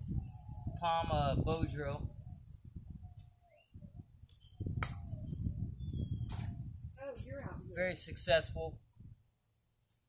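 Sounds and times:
low wind rumble on microphone: 0.0s - 9.4s.

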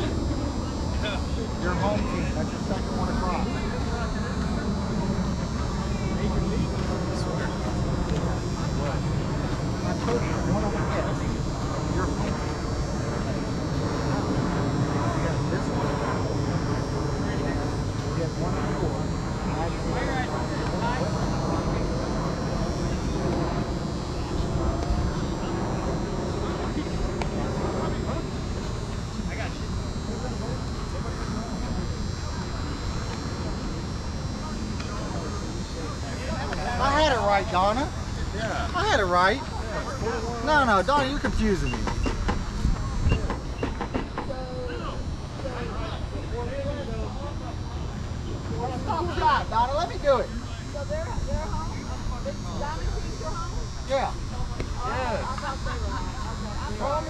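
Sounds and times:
players talking and calling out: 0.0s - 57.0s
steady low rumble: 0.0s - 57.0s.

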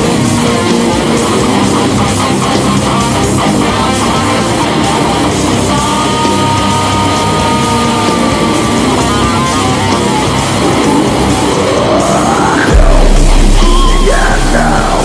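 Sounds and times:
electric guitar riffing: 0.0s - 15.0s
heavy metal band playing: 0.0s - 15.0s.

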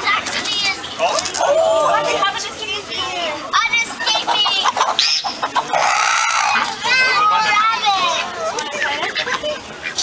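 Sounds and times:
chickens calling: 3.4s - 10.0s.

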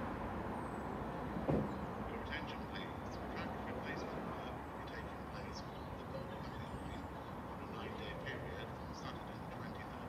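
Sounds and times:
thump: 1.4s - 1.8s.

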